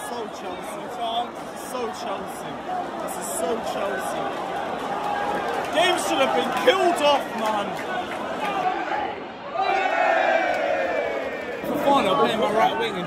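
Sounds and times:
crowd roar: 0.0 - 13.0
fans shouting: 0.0 - 13.0.

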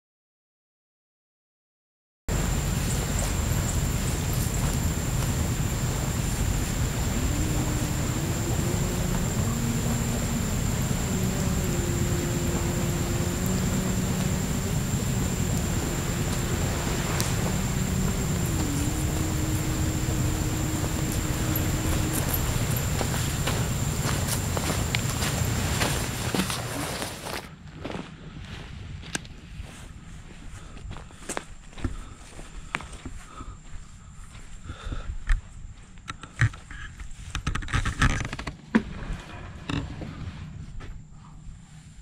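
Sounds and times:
thin high whine: 2.3 - 27.4
faint drawn-out humming tone: 2.3 - 27.6
footsteps: 2.3 - 28.7
wind rumble on microphone: 2.3 - 38.3.

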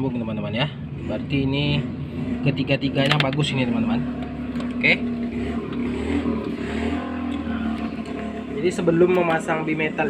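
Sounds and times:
low motor drone: 3.6 - 10.0.

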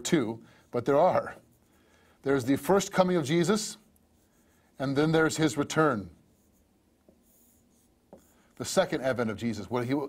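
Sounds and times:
line scratching on touchscreen: 0.6 - 1.8, 2.4 - 9.5.

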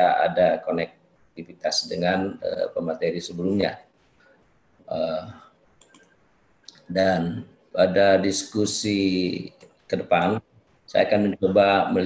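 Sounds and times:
faint clicks: 5.6 - 6.9.

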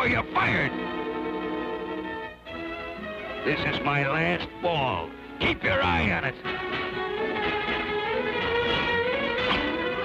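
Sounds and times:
orchestral music with violins: 0.0 - 10.0.

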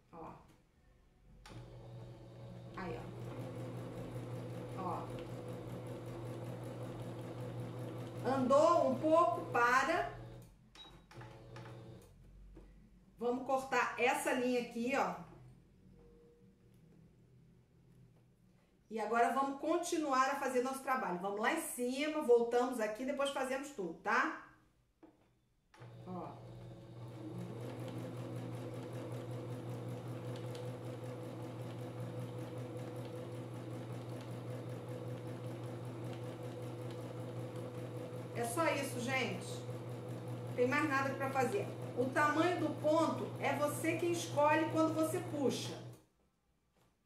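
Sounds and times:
sewing machine stitching: 1.5 - 12.2, 25.8 - 46.0.

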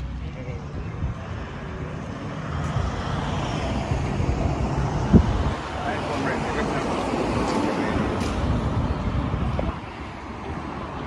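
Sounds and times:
vehicle passing: 0.0 - 11.0
wind buffeting microphone: 0.0 - 11.0.

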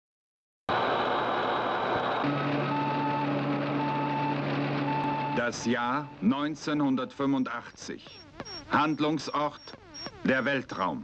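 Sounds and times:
electronic beeps: 2.6 - 11.0.

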